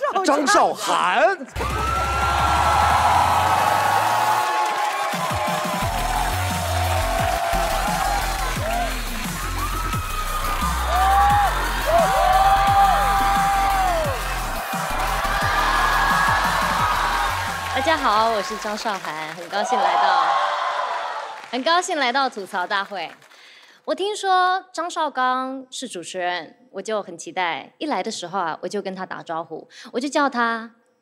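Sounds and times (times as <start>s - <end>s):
audience cheering and whooping: 1.5s - 21.6s
music with bass and sliding melody: 5.9s - 17.7s.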